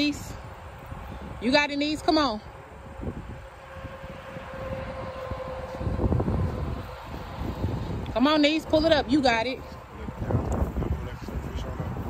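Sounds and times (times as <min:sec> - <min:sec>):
steady engine drone: 0:00.0 - 0:12.0
wind rumble on microphone: 0:00.0 - 0:12.0.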